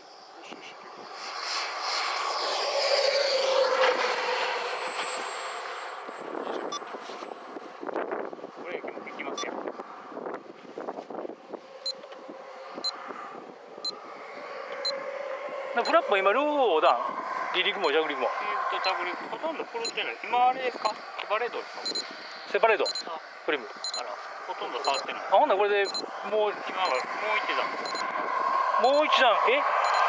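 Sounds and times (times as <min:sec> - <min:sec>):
model jet whine: 0:00.0 - 0:30.0
rushing noise: 0:00.0 - 0:30.0.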